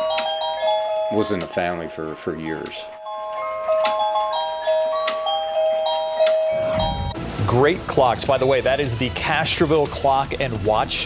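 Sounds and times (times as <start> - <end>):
bell-like chiming melody: 0.0 - 8.6
low whoosh: 6.6 - 9.1.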